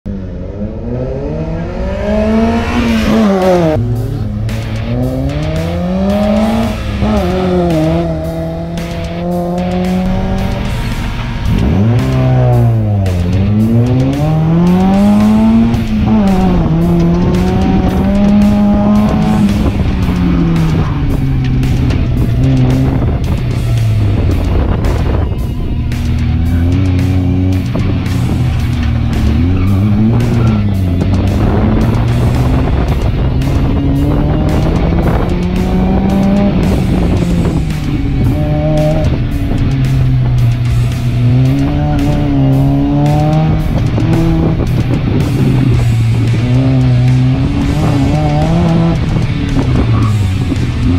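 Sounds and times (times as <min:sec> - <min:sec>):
background music: 0:00.1 - 0:50.9
car engine revving: 0:00.1 - 0:50.9.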